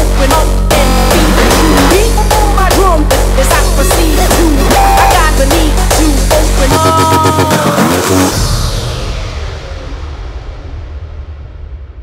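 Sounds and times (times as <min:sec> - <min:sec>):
low rumbling bass: 0:00.0 - 0:06.9
electronic dance music: 0:00.0 - 0:10.0.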